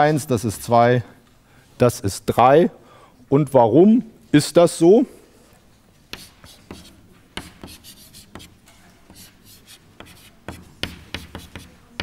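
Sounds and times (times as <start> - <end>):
chalk tapping and scratching: 6.1 - 12.0.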